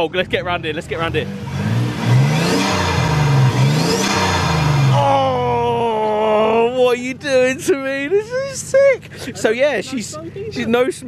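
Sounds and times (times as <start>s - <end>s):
car engine revving: 0.3s - 6.3s.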